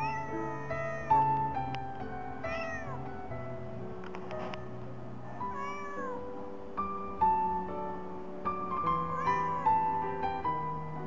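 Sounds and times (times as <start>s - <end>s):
kitten meowing: 0.0s - 1.6s, 2.4s - 3.2s, 5.3s - 6.3s, 8.9s - 10.2s
piano music: 0.0s - 11.0s.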